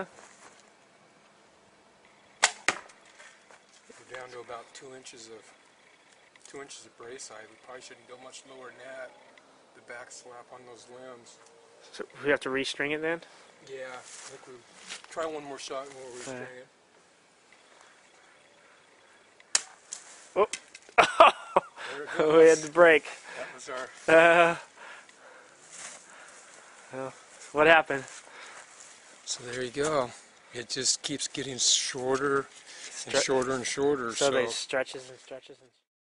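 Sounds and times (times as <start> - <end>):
bowstring snapping: 2.4 - 3.1, 19.4 - 21.0
bow shot sharp cracks: 2.4 - 3.3, 19.5 - 20.9.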